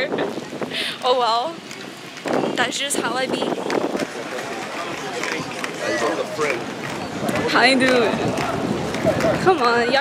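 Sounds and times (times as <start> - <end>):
indistinct voices talking: 0.0 - 10.0
street noise: 0.0 - 10.0.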